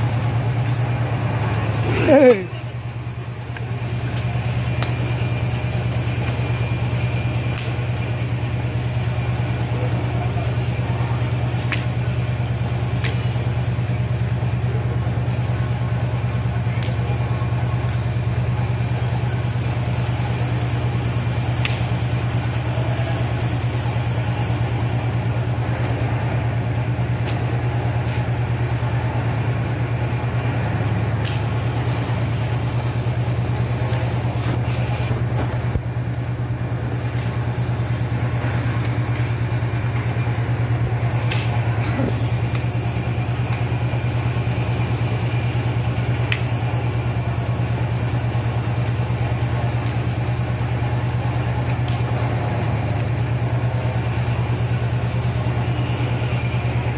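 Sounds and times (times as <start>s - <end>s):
low mechanical hum: 0.0s - 56.9s.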